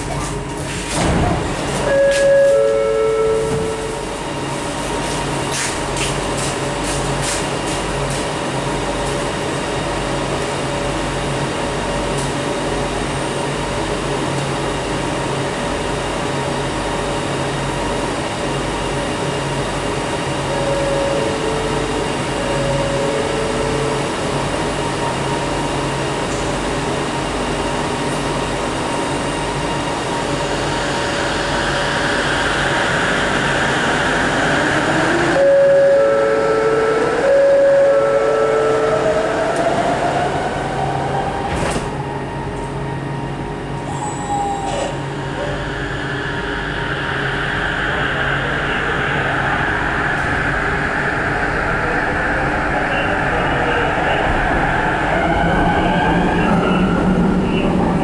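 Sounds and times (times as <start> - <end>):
train doors closing: 0.0 - 9.6, 20.1 - 26.6, 34.4 - 45.9
electric traction drive whine: 45.0 - 58.0.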